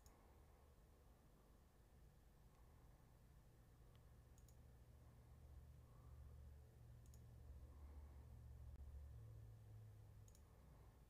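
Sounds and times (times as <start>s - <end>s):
low hum: 0.0s - 11.0s
computer mouse clicks: 3.9s - 4.7s, 7.0s - 7.3s, 10.2s - 10.6s.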